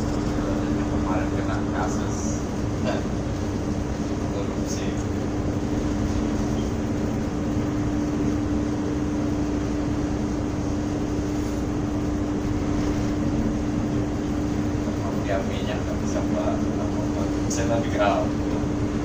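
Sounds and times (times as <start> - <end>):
ship engine droning: 0.0 - 19.0.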